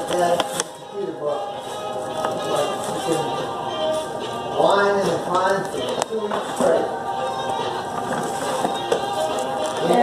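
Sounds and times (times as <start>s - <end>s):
paper and foil bag rustling: 0.0s - 7.0s, 7.7s - 10.0s
background music: 0.0s - 10.0s.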